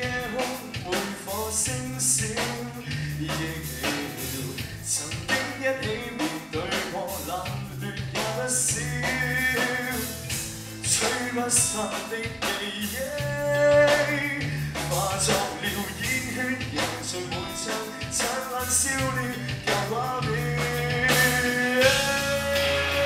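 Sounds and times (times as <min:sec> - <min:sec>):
person singing: 0:00.0 - 0:10.2, 0:10.8 - 0:23.0
bass guitar: 0:00.0 - 0:23.0
drum kit beat: 0:00.0 - 0:23.0
electric guitars: 0:00.0 - 0:23.0.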